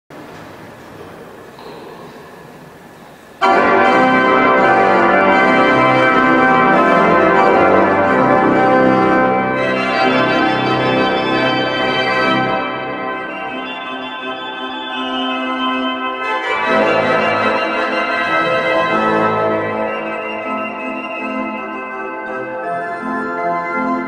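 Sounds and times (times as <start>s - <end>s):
pipe organ chords: 3.4s - 24.0s.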